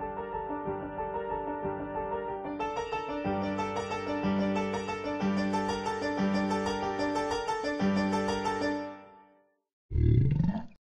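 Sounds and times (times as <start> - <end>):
piano music: 0.0 - 9.6
deep growl rising in pitch: 9.9 - 10.8.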